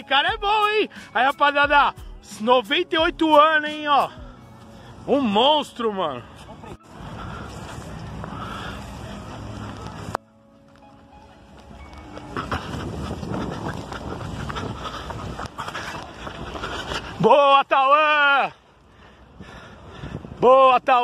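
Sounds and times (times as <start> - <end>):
wind rushing over microphone: 12.3 - 17.2, 19.3 - 20.6.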